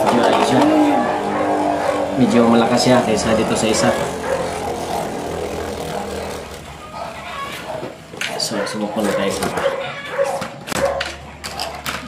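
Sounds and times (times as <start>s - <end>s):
spinning top whirring on plastic: 3.4s - 8.1s.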